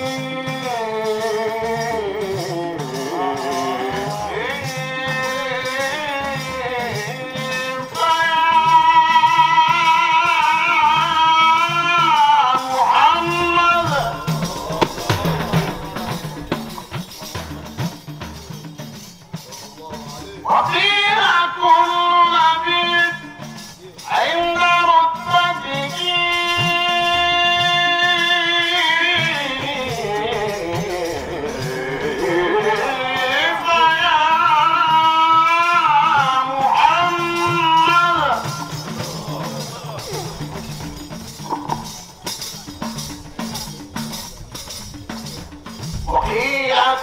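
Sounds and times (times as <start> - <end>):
amplified man singing: 0.0 - 17.0, 20.4 - 40.6, 46.1 - 47.0
man chanting through a microphone: 20.1 - 40.6, 46.0 - 47.0.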